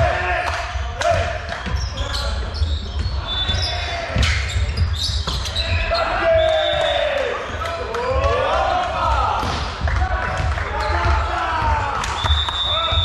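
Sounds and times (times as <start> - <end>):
sneakers squeaking on wooden floor: 0.7 - 6.9, 10.7 - 13.0.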